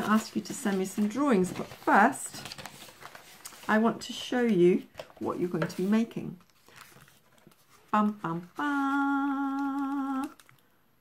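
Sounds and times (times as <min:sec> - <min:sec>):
woman humming a tune: 0:08.6 - 0:10.4.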